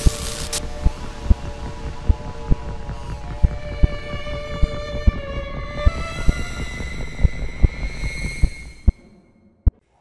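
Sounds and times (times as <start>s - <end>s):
slow uneven low thumps: 0.7s - 9.0s.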